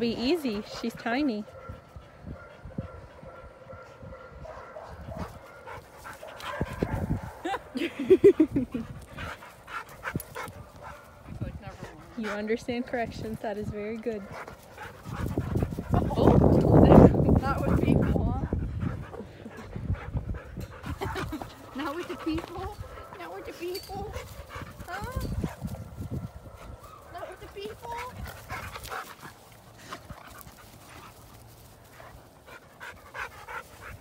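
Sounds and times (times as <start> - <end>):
dogs panting: 0.0 - 34.0.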